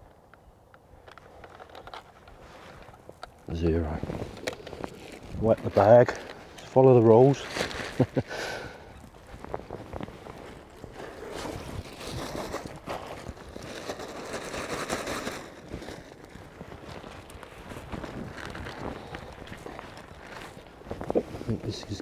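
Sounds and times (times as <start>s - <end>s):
plastic bag rustling: 1.5s - 22.0s.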